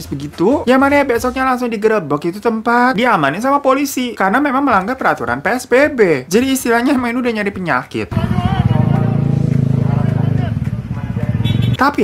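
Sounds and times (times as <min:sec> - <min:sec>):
people's voices: 0:08.0 - 0:12.0
motorcycle engine running: 0:08.1 - 0:11.9.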